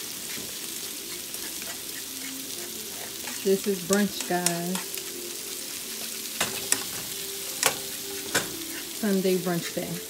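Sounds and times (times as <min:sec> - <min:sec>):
seafood sizzling in a frying pan: 0:00.0 - 0:10.0.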